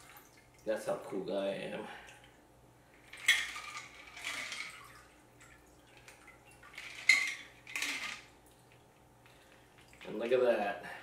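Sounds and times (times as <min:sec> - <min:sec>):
ice rattling in cocktail shaker: 0:03.1 - 0:04.9, 0:06.7 - 0:08.3.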